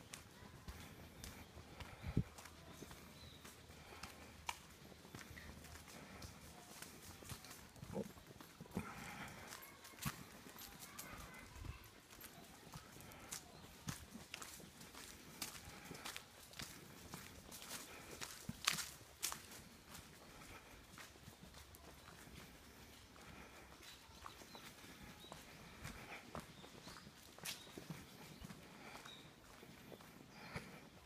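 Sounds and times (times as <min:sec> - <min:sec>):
footsteps on leaf-strewn path: 0:00.0 - 0:31.0.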